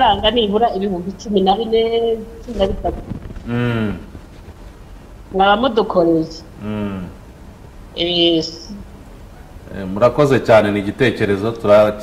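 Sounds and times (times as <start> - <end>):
man's drawn-out hesitation vowel: 3.5 - 4.1, 6.6 - 7.2.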